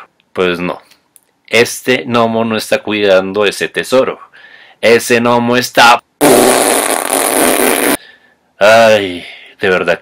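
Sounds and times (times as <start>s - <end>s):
rasping fart: 6.2s - 8.0s.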